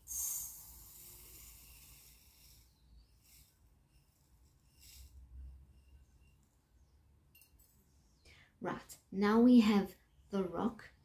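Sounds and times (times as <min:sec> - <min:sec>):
faint trickles of grains: 0:00.1 - 0:06.5.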